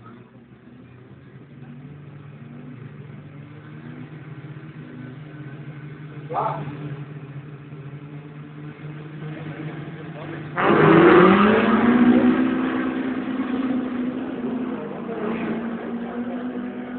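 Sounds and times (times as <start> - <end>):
race cars idling: 0.0 - 16.9
engines revving hard: 1.5 - 16.9.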